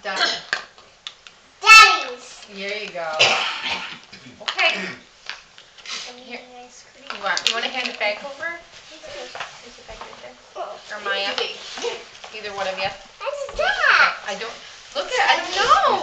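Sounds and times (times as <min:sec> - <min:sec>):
small child's voice: 0:01.6 - 0:02.4
people talking: 0:01.6 - 0:03.4, 0:06.1 - 0:16.0.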